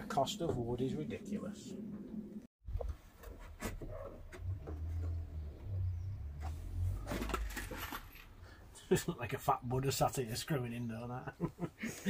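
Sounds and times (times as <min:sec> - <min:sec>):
clatter: 0:07.0 - 0:08.3.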